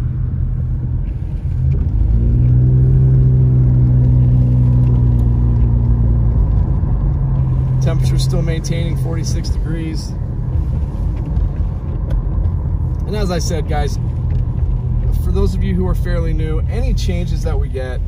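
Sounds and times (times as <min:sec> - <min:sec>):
car engine and tyres rumbling: 0:00.0 - 0:18.0.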